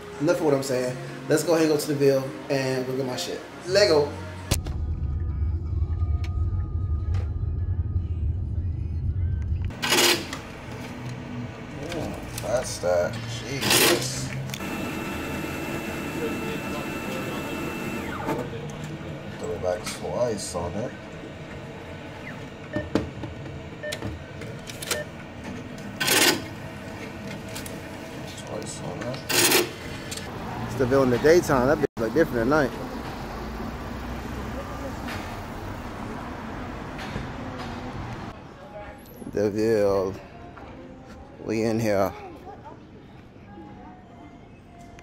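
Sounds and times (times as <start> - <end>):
faint music: 0.0 - 33.2, 37.2 - 45.0
cash machine clicks: 26.0 - 26.6, 29.2 - 29.8.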